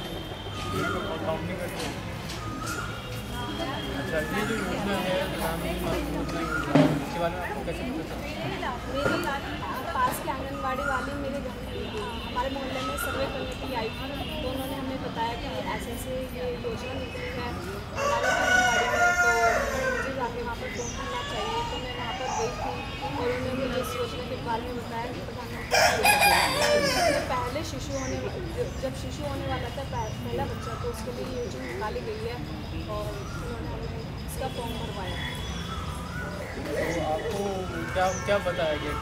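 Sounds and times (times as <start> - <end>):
voices: 0.0 - 39.0
rooster crowing: 18.0 - 20.3, 25.7 - 27.4.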